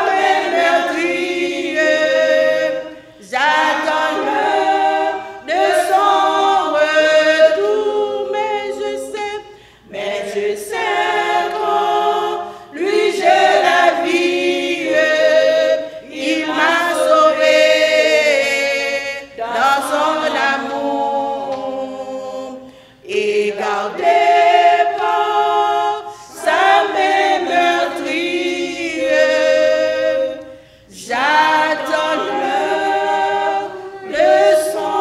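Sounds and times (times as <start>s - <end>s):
women singing a hymn a cappella: 0.0s - 35.0s.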